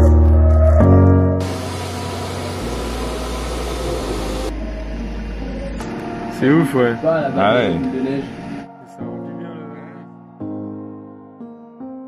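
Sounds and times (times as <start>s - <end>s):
motor grader engine rumble: 1.4s - 6.7s
loud steady hiss: 1.4s - 8.6s.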